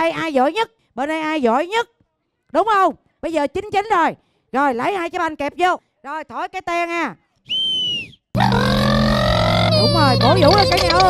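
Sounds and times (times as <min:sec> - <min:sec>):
high-pitched whistle blast: 0:07.5 - 0:09.1.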